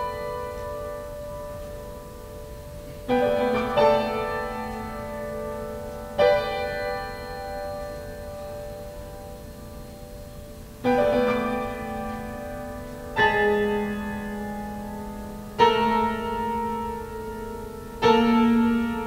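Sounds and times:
grand piano chords: 0:00.0 - 0:19.0.

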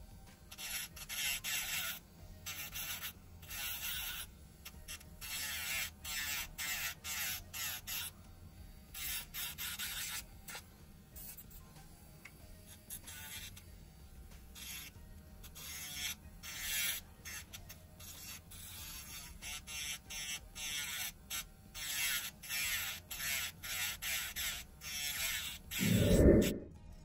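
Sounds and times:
electric nail drill grinding: 0:00.5 - 0:11.6, 0:12.2 - 0:26.6.

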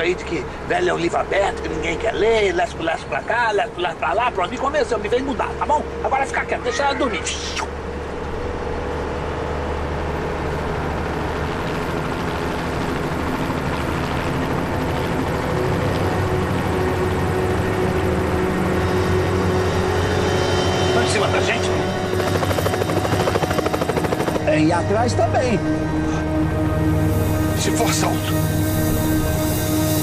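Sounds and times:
helicopter rotor beating: 0:00.0 - 0:30.0.

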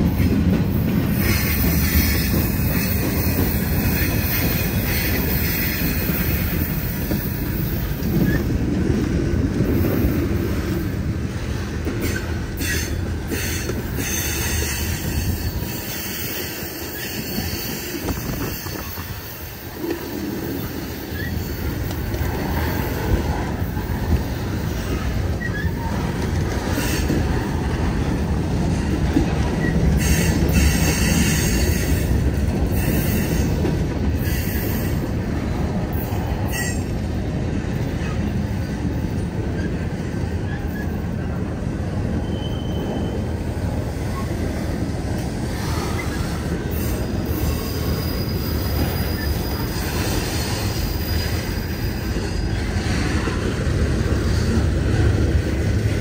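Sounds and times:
steel wheels rumbling on rail: 0:00.0 - 0:56.0
thin wheel squeals: 0:42.2 - 0:43.2, 0:47.3 - 0:52.8.

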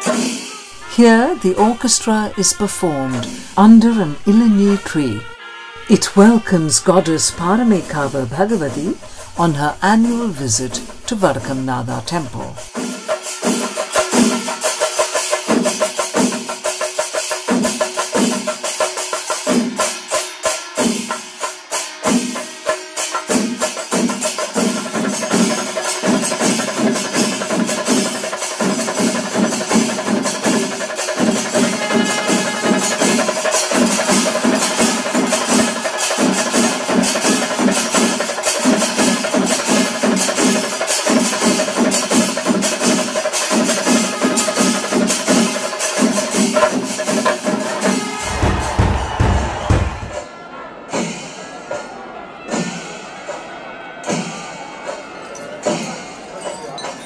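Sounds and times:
horn blasts: 0:00.0 - 0:15.2, 0:24.3 - 0:41.0, 0:43.8 - 0:50.3
chenda drums beaten fast: 0:00.0 - 0:50.3
held high tone: 0:00.7 - 0:12.6.

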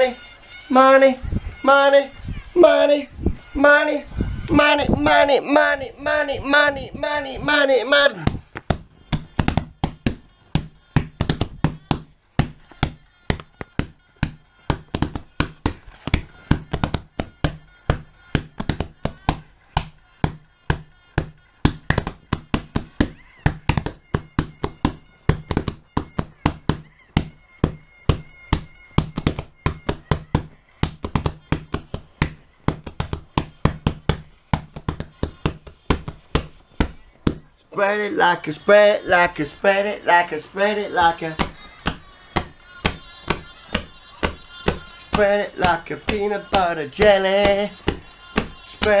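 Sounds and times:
hands drumming on a surface: 0:08.2 - 0:37.5, 0:41.0 - 0:49.0.

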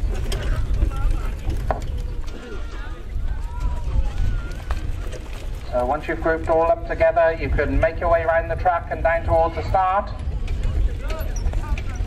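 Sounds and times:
people talking: 0:05.7 - 0:12.0.

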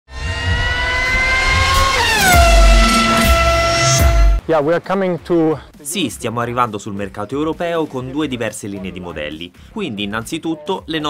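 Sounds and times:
pulsing deep bass: 0:00.1 - 0:04.4
car engine revving: 0:00.1 - 0:04.5
music sting: 0:00.1 - 0:04.6.

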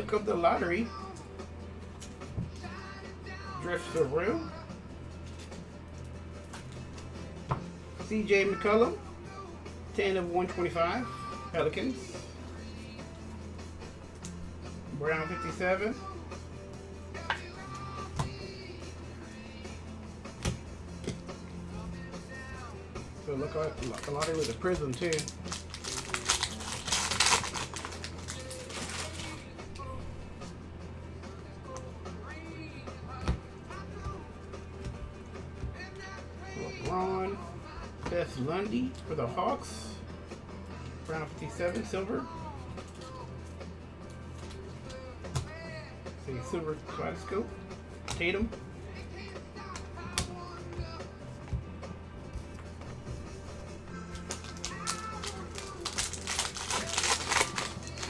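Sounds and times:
faint background music: 0:00.0 - 0:58.0
cards being handled: 0:23.5 - 0:29.9, 0:52.3 - 0:58.0
foil pack crinkling and tearing: 0:23.7 - 0:29.4, 0:54.1 - 0:58.0.

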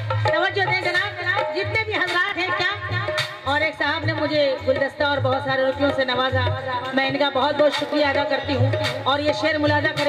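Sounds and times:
harmonium: 0:00.0 - 0:10.0
woman singing: 0:00.2 - 0:10.0.

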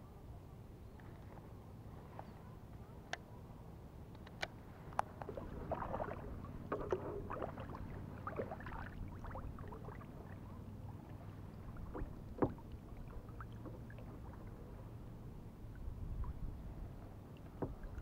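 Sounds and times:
paddle splashing in water: 0:05.2 - 0:18.0
paddle knocking against boat: 0:06.7 - 0:09.4, 0:11.8 - 0:14.4, 0:17.5 - 0:18.0.

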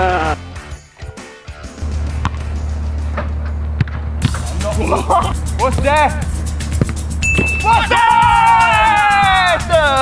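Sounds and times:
background music with deep bass: 0:00.0 - 0:10.0.

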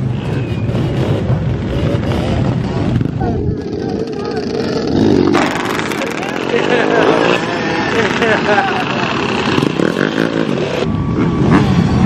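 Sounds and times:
motorcycle engines running: 0:00.0 - 0:12.0
people's voices: 0:02.6 - 0:12.0.

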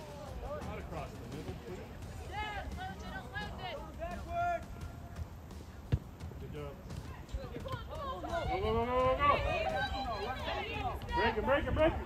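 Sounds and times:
players shouting calls: 0:00.0 - 0:05.7, 0:07.0 - 0:12.0
ball being kicked: 0:04.1 - 0:09.7.

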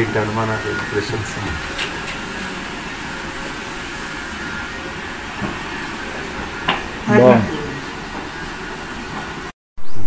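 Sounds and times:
steady hiss: 0:00.0 - 0:09.5
person talking: 0:07.1 - 0:07.9.

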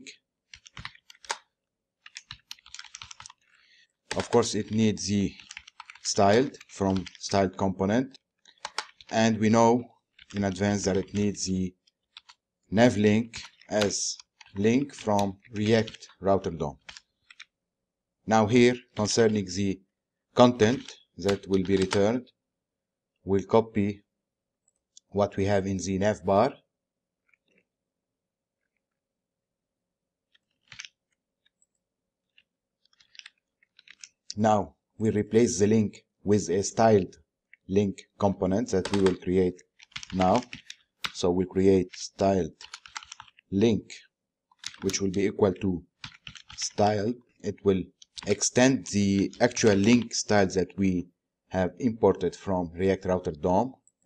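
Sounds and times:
computer keyboard typing: 0:00.5 - 0:17.6, 0:18.4 - 0:19.6, 0:20.4 - 0:22.2, 0:30.3 - 0:31.7, 0:32.3 - 0:34.3, 0:38.3 - 0:43.5, 0:44.6 - 0:50.5.

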